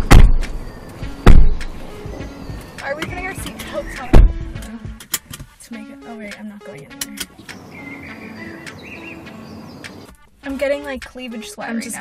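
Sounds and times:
car doors shutting: 0.0s - 5.5s.

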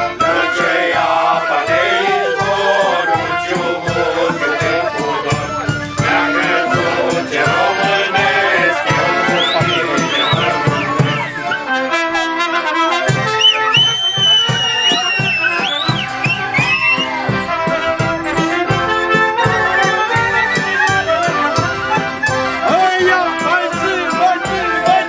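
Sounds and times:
folk brass band playing: 0.0s - 25.0s
trumpet melody: 0.0s - 25.0s.

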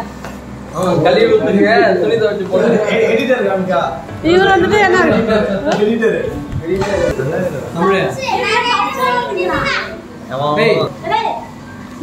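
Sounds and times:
excited voices talking: 1.4s - 11.6s.

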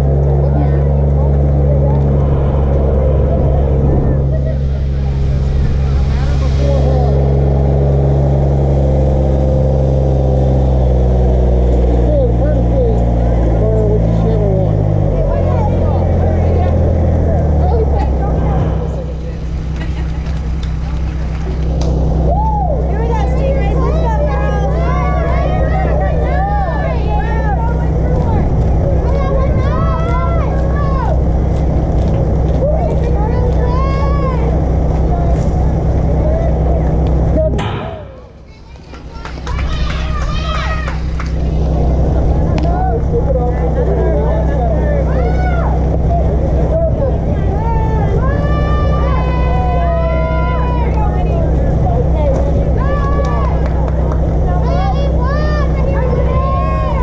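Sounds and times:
motor running steadily: 0.0s - 57.0s
people's voices: 0.0s - 57.0s.

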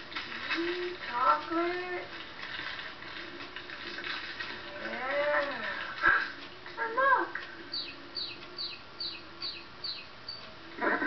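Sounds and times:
plastic wrappers crackling: 0.0s - 7.5s.

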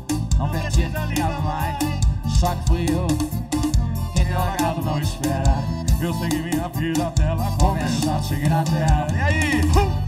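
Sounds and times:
accordion: 0.0s - 10.0s
acoustic guitar: 0.0s - 10.0s
steady beat: 0.0s - 10.0s.

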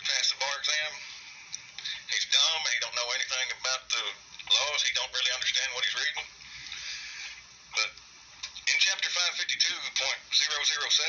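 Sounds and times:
person speaking over telephone: 0.0s - 1.1s, 1.8s - 6.3s, 7.8s - 8.0s, 8.6s - 11.0s
telephone line hiss: 0.0s - 8.0s.

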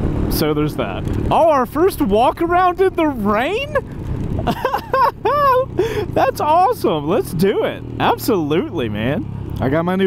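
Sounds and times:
wind noise: 0.0s - 6.3s
motorcycle engine hum: 0.0s - 10.0s
person talking: 0.3s - 3.8s, 5.3s - 10.0s.

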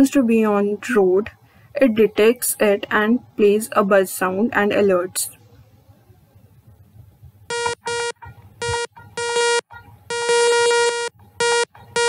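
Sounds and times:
buzzy alert beeps: 7.5s - 12.0s.

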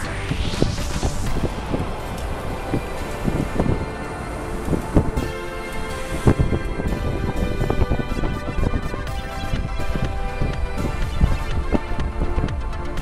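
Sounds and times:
background music with percussive hits: 0.0s - 13.0s
low noisy rumble: 0.0s - 13.0s.

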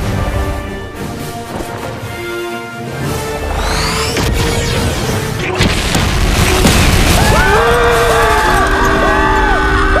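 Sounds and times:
music of gliding tones: 0.0s - 5.7s.

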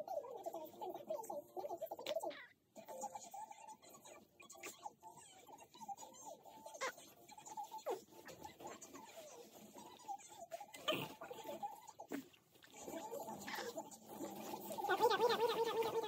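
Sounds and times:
clicks and rustles of nappy: 1.6s - 16.0s
baby grunting and squeaking: 10.6s - 16.0s.

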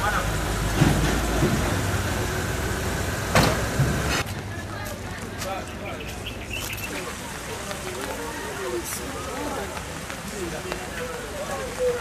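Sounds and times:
car door slamming: 3.3s - 3.9s
thump: 3.3s - 4.0s.

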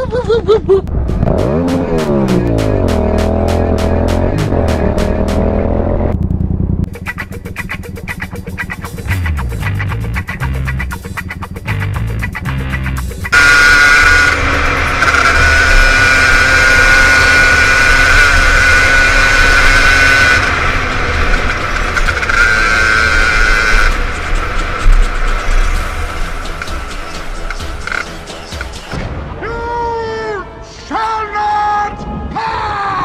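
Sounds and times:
motorcycle engine running: 0.8s - 29.0s.

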